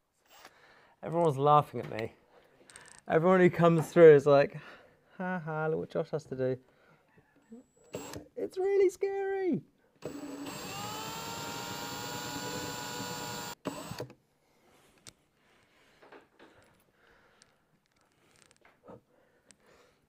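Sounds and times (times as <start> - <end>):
cordless drill motor whine: 7.9 - 8.2, 10.0 - 14.1.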